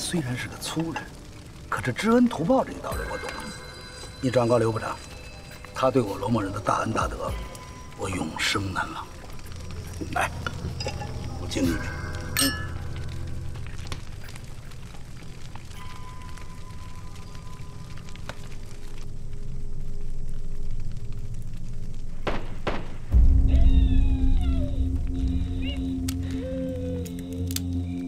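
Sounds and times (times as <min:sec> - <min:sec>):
tense drama score: 0:00.0 - 0:28.0
deep boom: 0:22.3 - 0:25.9
cat meowing: 0:23.5 - 0:26.0.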